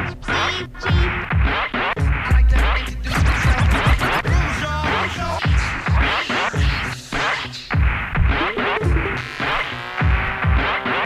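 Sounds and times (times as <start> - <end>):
hip hop beat: 0.0 - 11.0
deep kick drum: 0.9 - 4.6, 5.4 - 6.8
scratch-like sliding sounds: 1.5 - 4.3.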